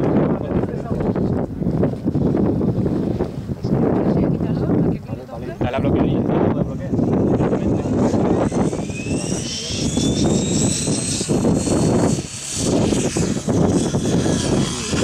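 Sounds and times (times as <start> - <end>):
low rumbling noise: 0.0 - 15.0
model helicopter whine: 5.4 - 15.0.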